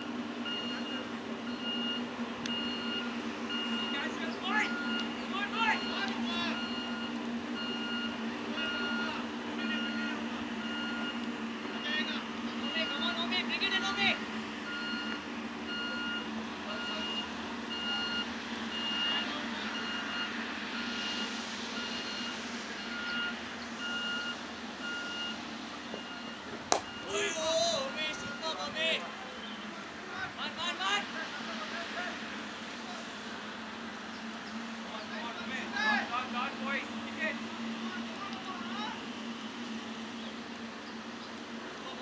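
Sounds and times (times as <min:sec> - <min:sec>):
reversing alarm beeping: 0:00.4 - 0:28.8.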